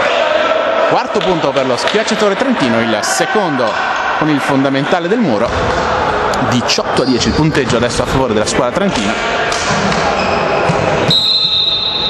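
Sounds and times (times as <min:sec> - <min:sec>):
crowd and court noise: 0:00.0 - 0:12.0
steady high whistle tone: 0:11.0 - 0:12.0.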